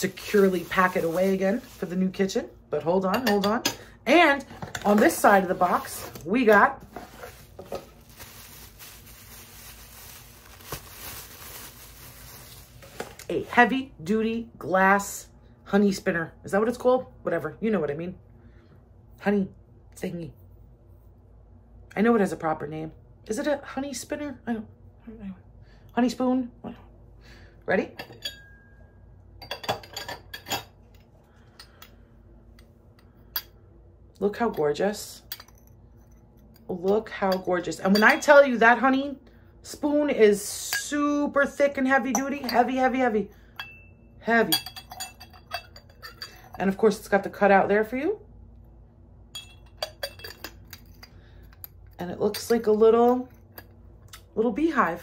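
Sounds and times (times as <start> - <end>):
cardboard box rustling and scraping: 6.8 - 8.3.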